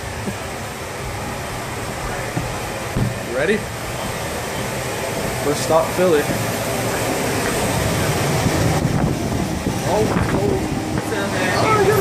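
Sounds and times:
rushing rumble of air-handling machinery: 0:00.0 - 0:12.0.

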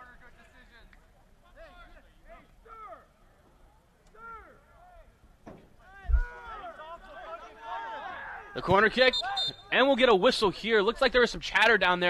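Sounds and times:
people shouting calls: 0:04.1 - 0:05.2, 0:05.8 - 0:10.0.

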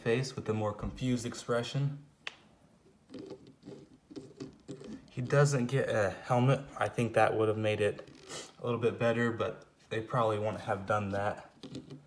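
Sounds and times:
plastic figure rubbing and clicking: 0:02.8 - 0:05.8, 0:07.9 - 0:08.6, 0:11.3 - 0:12.0.

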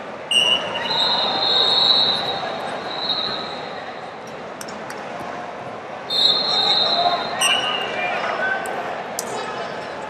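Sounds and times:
murmur of a large hall: 0:00.0 - 0:10.0.

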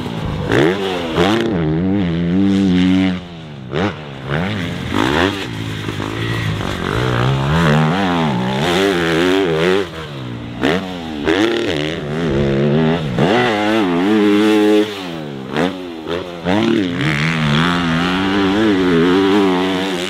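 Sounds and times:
motocross bike engine revving: 0:00.0 - 0:20.0.

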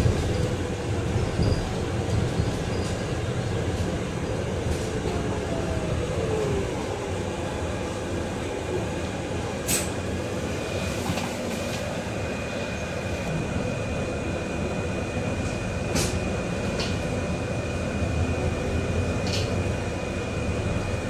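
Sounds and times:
bus cabin rumble: 0:00.0 - 0:21.0.

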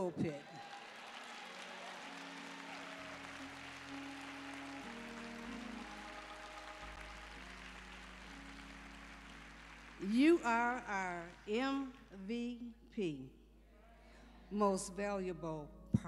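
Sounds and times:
congregation applauding: 0:00.0 - 0:12.2
sustained instrumental chords: 0:02.1 - 0:13.7.

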